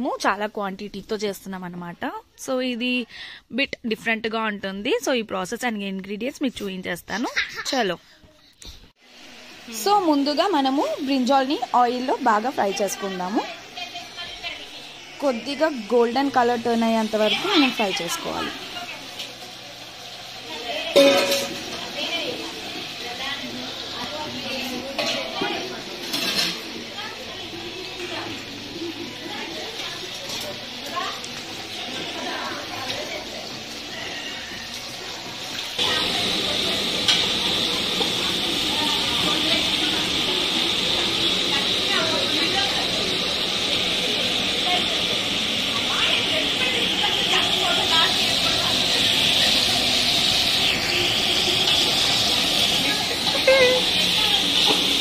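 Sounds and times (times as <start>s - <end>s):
people talking: 0.0s - 8.4s, 9.7s - 19.8s, 20.4s - 35.2s, 35.8s - 55.0s
food sizzling in hot oil: 9.0s - 55.0s.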